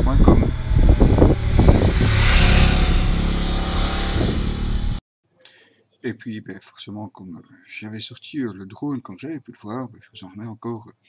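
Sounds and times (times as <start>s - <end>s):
motorcycle passing by: 0.0s - 5.0s
rushing sound: 0.5s - 5.0s.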